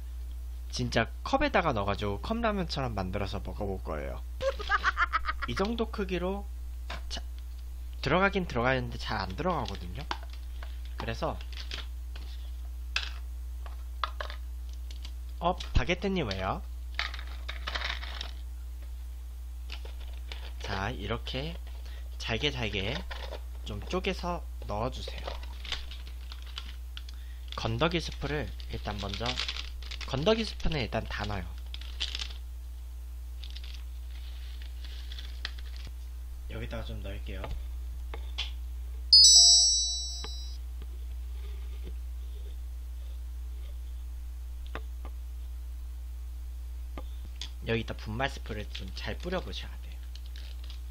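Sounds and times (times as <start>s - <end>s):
steady low hum: 0.0s - 50.9s
dry noodles cracking: 25.4s - 30.2s, 31.2s - 32.4s, 33.4s - 35.9s, 50.0s - 50.9s
electronic alert chime: 39.2s - 40.6s.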